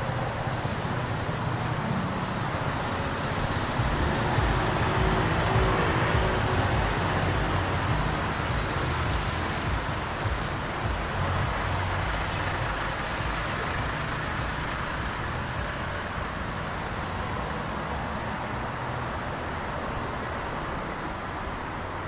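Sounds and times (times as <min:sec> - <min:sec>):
road traffic rumble: 0:00.0 - 0:22.0.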